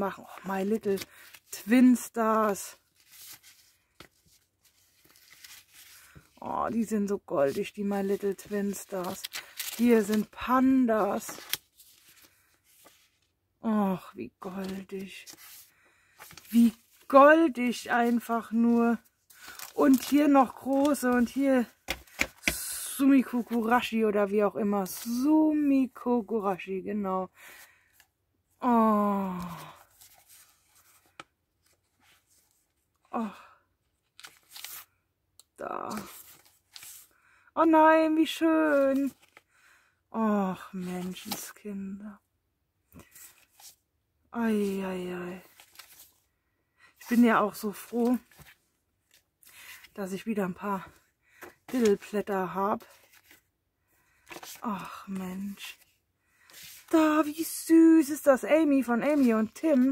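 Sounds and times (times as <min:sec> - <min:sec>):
paper sheets rustling: 0:02.6 - 0:06.4, 0:07.4 - 0:13.3, 0:14.4 - 0:23.9, 0:29.4 - 0:32.6, 0:34.2 - 0:34.9, 0:35.9 - 0:37.1, 0:38.7 - 0:39.4, 0:41.0 - 0:41.6, 0:45.4 - 0:46.2, 0:47.1 - 0:50.0, 0:50.9 - 0:52.2, 0:52.8 - 0:53.5, 0:54.1 - 0:57.1, 0:58.6 - 0:59.9.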